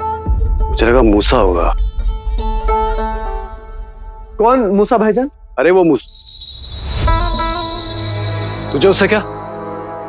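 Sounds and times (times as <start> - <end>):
sustained high tone: 6.1 - 9.7
held chord: 7.0 - 10.0.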